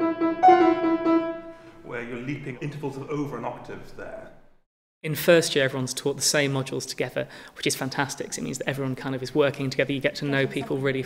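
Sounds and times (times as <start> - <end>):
piano playing: 0.0 - 1.9.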